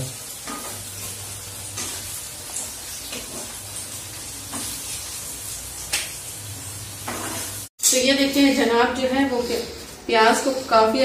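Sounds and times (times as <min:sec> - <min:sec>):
onions sizzling in hot oil: 0:00.0 - 0:11.0
metal spatula scraping a pan: 0:07.1 - 0:08.4.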